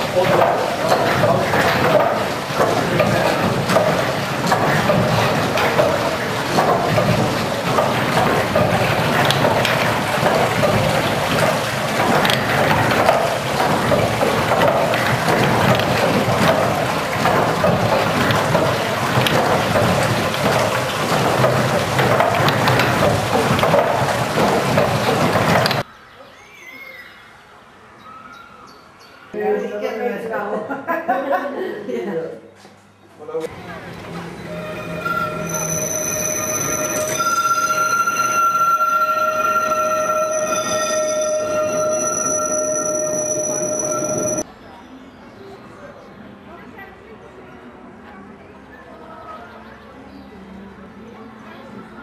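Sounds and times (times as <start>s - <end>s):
rushing water: 0.0s - 25.8s
wooden machinery knocking: 0.0s - 25.9s.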